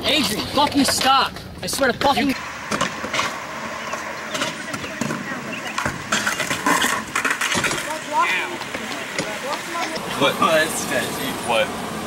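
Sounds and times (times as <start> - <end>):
skateboard clattering on concrete: 2.0 - 10.1.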